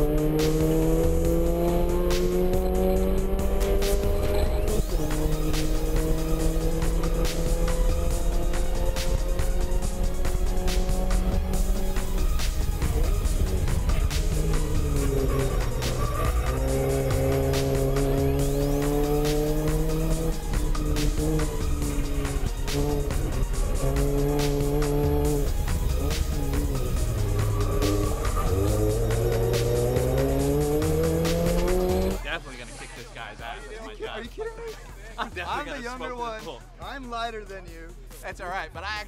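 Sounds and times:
race car engine at full throttle: 0.0s - 33.0s
music: 0.0s - 39.0s.

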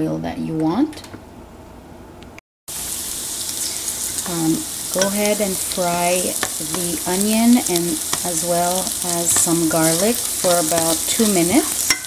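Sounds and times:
onions frying in hot oil: 2.7s - 12.0s.

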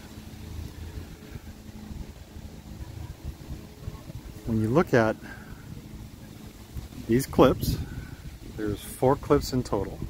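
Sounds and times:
faint steady hum: 0.0s - 10.0s
wind rumbling on microphone: 0.0s - 10.0s.

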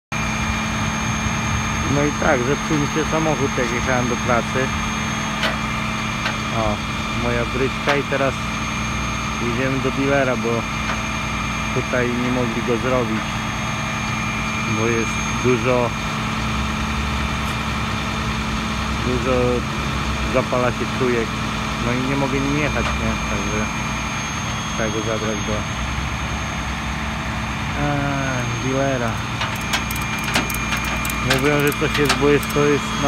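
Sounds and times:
truck engine idling: 0.2s - 33.0s
thin whine: 20.4s - 33.0s.

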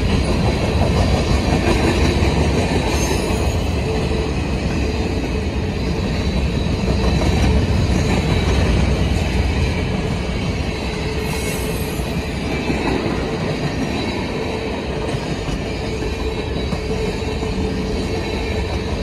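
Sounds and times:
freight train wheels rumbling: 0.0s - 19.0s.

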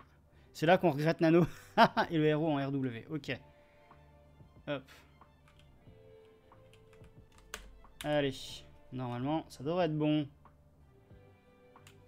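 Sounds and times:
computer keyboard keystrokes: 5.5s - 5.7s, 6.6s - 8.2s.

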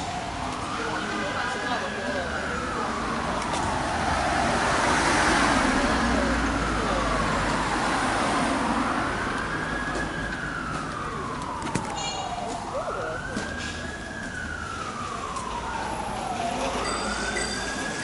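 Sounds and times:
emergency siren wailing: 0.0s - 18.0s
street noise: 0.0s - 18.0s.

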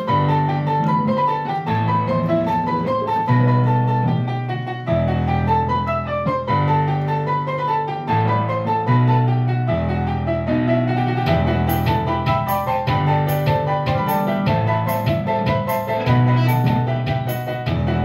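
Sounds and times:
piano-like keyboard melody: 0.0s - 18.0s.

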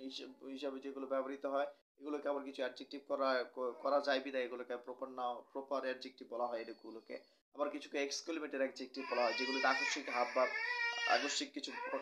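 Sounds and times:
man speaking: 0.0s - 12.0s
baby crying: 3.6s - 4.2s, 9.0s - 12.0s.

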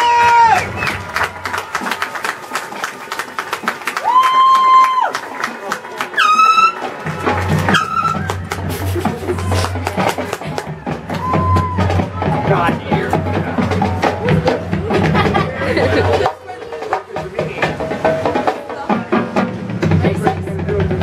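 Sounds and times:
crowd chatter: 0.0s - 21.0s
held brass notes: 6.0s - 14.1s
percussion hits: 6.5s - 21.0s.

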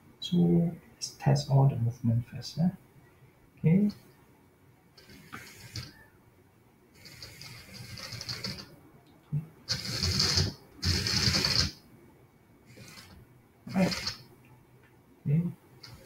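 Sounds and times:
robot drive motors whirring: 5.0s - 5.9s, 9.7s - 11.8s, 12.7s - 14.2s.

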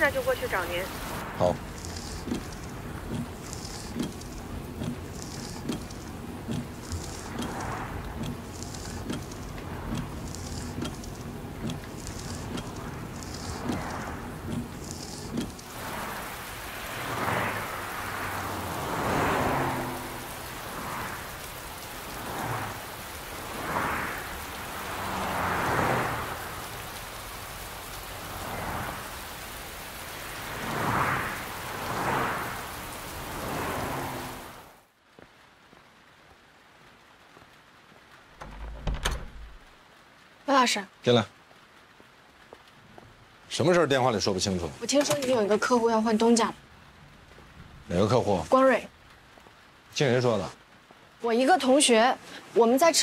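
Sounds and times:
heavy rain falling: 0.0s - 53.0s.

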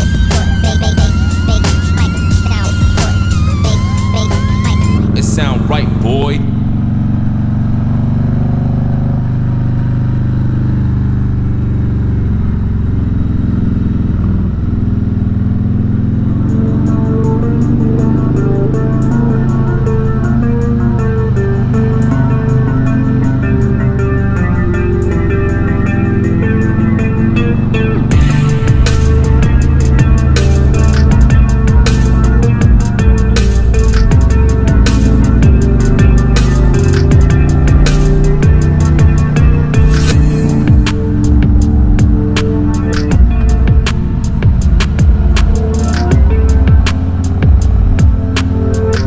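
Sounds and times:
background music with a beat: 0.0s - 6.4s, 28.1s - 49.0s
motorcycle engine cruising: 0.0s - 49.0s.

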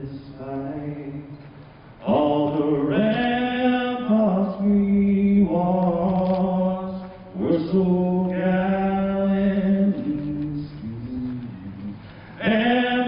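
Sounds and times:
man singing into a microphone: 0.0s - 13.0s.

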